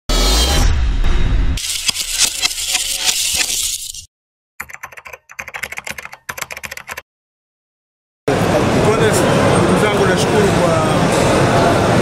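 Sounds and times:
keyboard typing clicks: 0:04.6 - 0:07.0.

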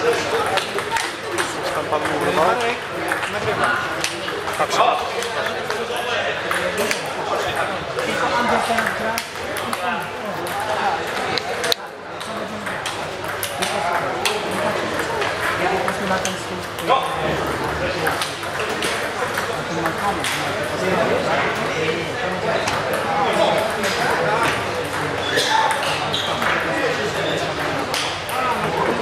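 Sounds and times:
people talking: 0:00.0 - 0:29.0
table tennis balls clicking: 0:00.4 - 0:04.6, 0:08.6 - 0:20.9.

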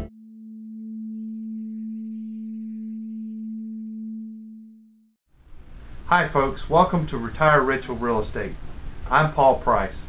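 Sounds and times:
low hum tone: 0:00.0 - 0:05.7
thin high whine: 0:00.1 - 0:06.7.

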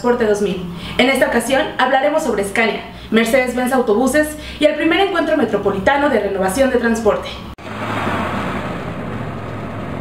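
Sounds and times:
low engine-like hum: 0:07.6 - 0:10.0
rushing whoosh: 0:07.6 - 0:10.0.

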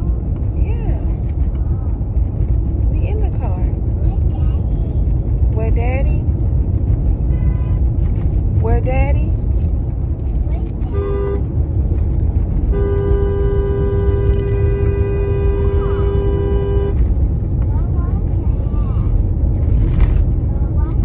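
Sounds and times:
road noise inside moving car: 0:00.0 - 0:21.0
car horn: 0:07.2 - 0:08.0, 0:10.8 - 0:11.6, 0:12.5 - 0:17.1.

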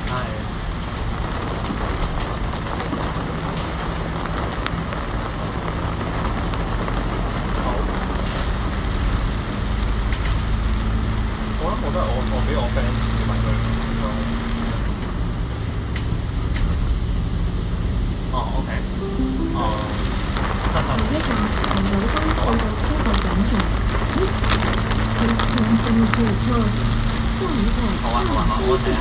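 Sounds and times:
bus diesel engine drone: 0:00.0 - 0:29.0
road noise: 0:00.0 - 0:29.0.

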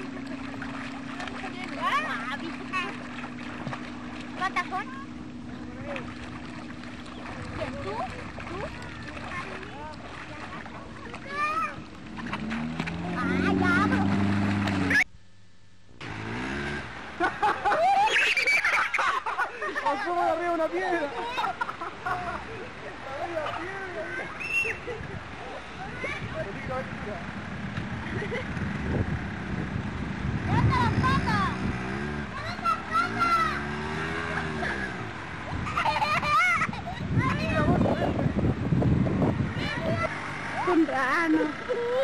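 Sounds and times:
voices calling out: 0:00.0 - 0:15.1, 0:16.8 - 0:29.5, 0:30.3 - 0:42.0
motorboat engine: 0:00.0 - 0:42.0
children shouting: 0:17.7 - 0:19.1, 0:32.4 - 0:34.4.

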